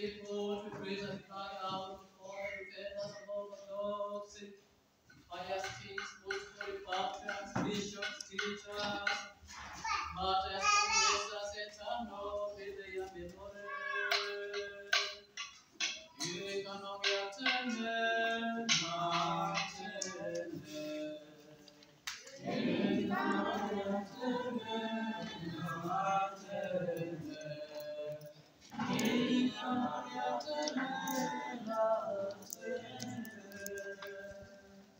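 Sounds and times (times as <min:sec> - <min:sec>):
voices chanting: 0:16.0 - 0:34.9.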